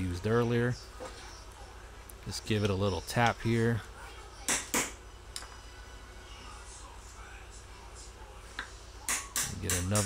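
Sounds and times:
man speaking: 0:02.2 - 0:03.9, 0:09.4 - 0:10.0.

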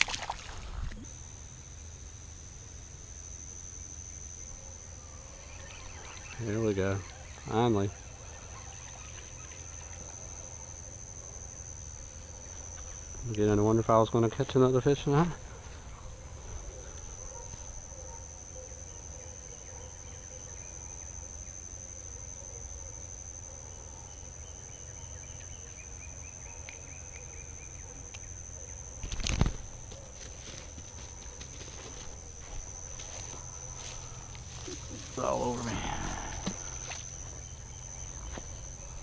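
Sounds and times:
insects droning: 0:00.0 - 0:39.0.

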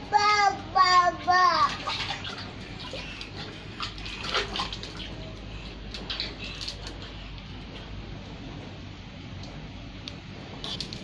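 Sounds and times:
water splashing in a metal bucket: 0:01.1 - 0:07.2.

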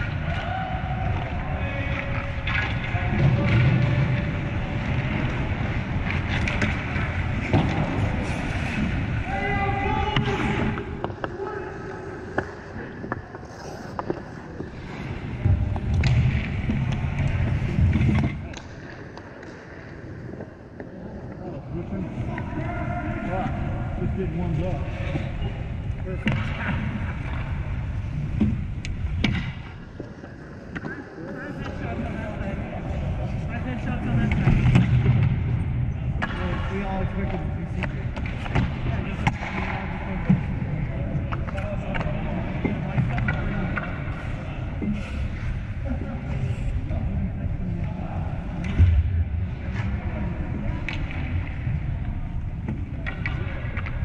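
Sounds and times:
sticks and pucks clacking: 0:00.0 - 0:21.4, 0:25.9 - 0:32.7, 0:33.3 - 0:35.4, 0:36.2 - 0:46.9, 0:49.5 - 0:54.0
skates scraping ice: 0:00.8 - 0:35.6.

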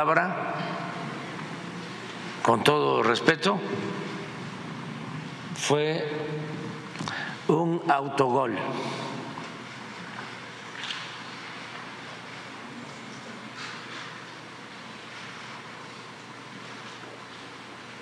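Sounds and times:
man speaking: 0:02.4 - 0:04.0, 0:05.6 - 0:06.8, 0:07.4 - 0:09.4.

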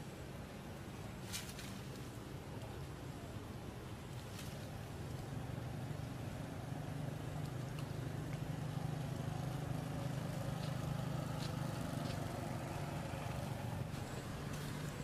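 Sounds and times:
low engine hum: 0:02.0 - 0:15.0.

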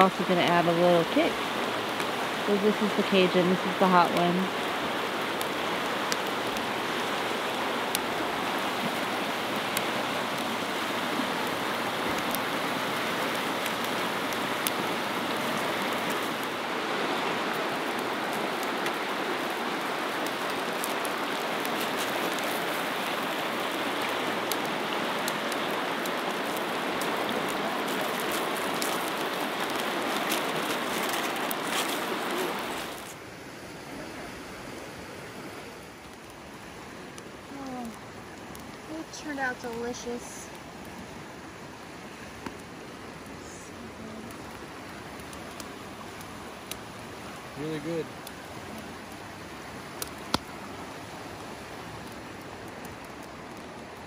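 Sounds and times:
fast-flowing river rushing: 0:00.0 - 0:37.2.

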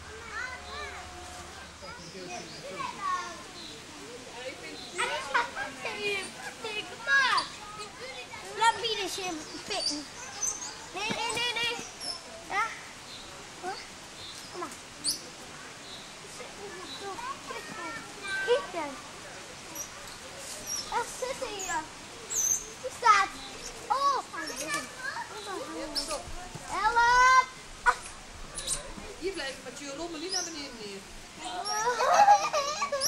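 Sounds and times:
young people calling excitedly: 0:00.0 - 0:13.0, 0:16.1 - 0:19.2, 0:20.7 - 0:33.0.

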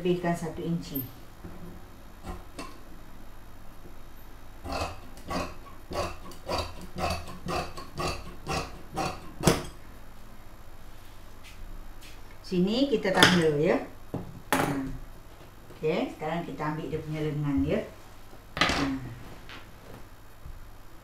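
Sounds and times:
shears snipping fabric: 0:04.7 - 0:09.7.

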